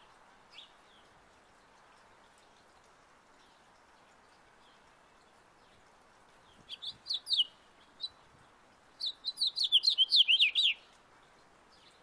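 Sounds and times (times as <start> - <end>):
outdoor background hiss: 0.0 - 12.0
faint high bird chirps: 6.6 - 8.2, 9.0 - 10.9.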